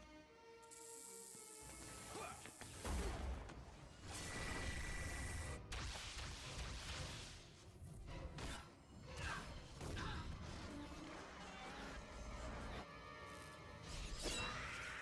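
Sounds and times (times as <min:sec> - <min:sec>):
dramatic score: 0:01.4 - 0:15.0.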